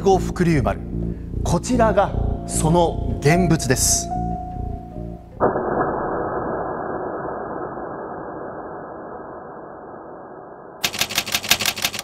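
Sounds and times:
typewriter keystroke clicks: 10.8 - 12.0.

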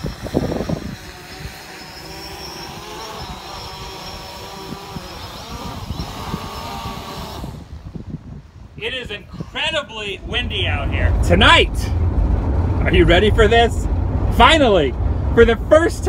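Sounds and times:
drone propellers whining: 0.0 - 16.0
wind on microphone: 0.0 - 16.0.

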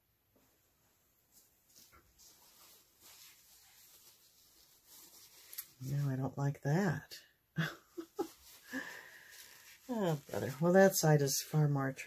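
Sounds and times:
faint soft rubbing: 0.4 - 6.4, 7.9 - 11.6.

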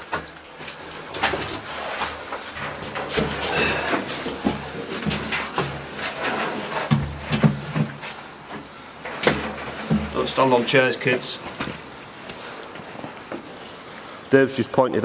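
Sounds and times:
footsteps over debris: 0.0 - 14.2
metal sheet clattering: 0.8 - 7.9.

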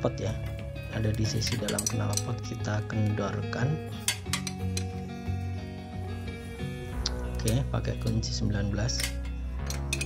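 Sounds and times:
background music: 0.0 - 10.0
metallic spanner clinks: 8.9 - 10.0.

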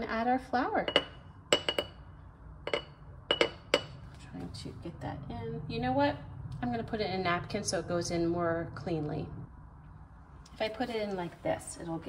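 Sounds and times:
glass bowl clinking on jar rim: 0.9 - 2.0, 2.7 - 4.0.

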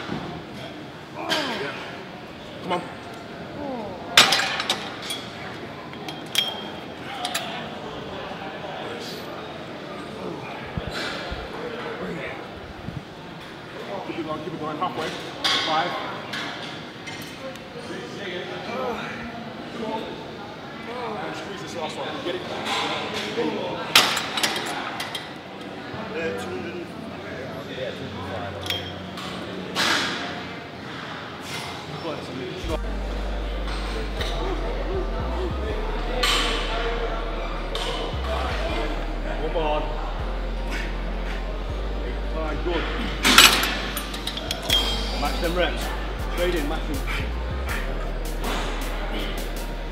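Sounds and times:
murmur of voices: 0.0 - 49.9
deep bass background music: 32.7 - 49.9.

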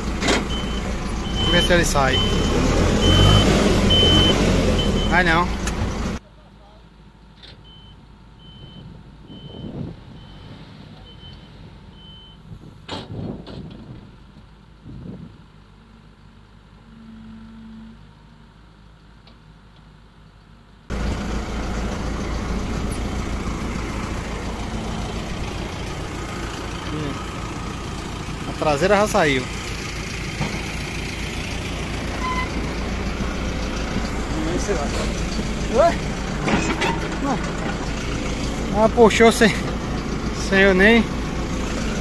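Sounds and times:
tractor engine running: 0.0 - 42.0
reversing alarm beeping: 0.5 - 5.4, 7.6 - 12.4, 16.8 - 18.4, 32.2 - 32.6
distant heavy machinery: 20.9 - 42.0.

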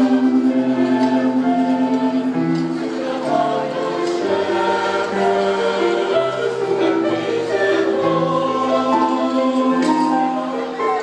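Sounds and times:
mixed choir singing a carol: 0.0 - 11.0.

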